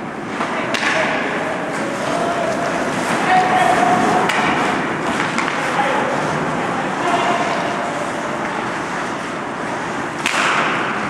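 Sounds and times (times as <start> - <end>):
skate blades scraping ice: 1.7 - 11.0.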